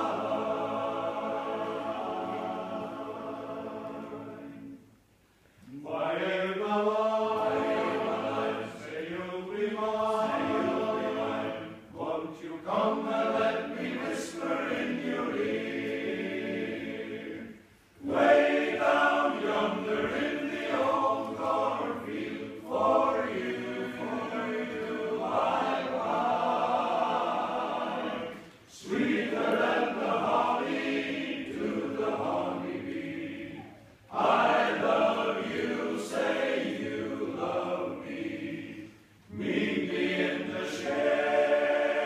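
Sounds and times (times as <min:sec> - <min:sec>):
men's choir singing a cappella: 0:00.0 - 0:04.8, 0:05.7 - 0:42.0.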